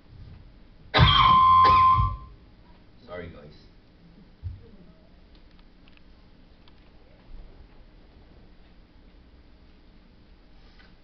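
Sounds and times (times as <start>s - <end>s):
high steady ringing tone: 1.0s - 2.4s.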